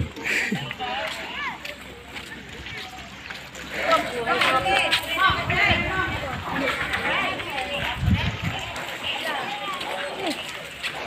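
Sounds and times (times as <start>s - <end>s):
people chattering and calling out: 0.0s - 11.0s.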